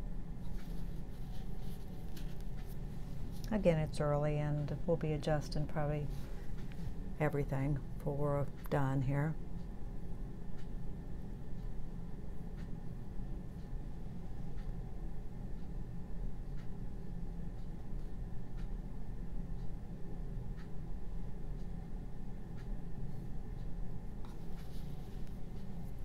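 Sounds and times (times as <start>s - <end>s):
low room hum: 0.0s - 26.0s
brush strokes on canvas: 0.4s - 3.6s, 24.2s - 26.0s.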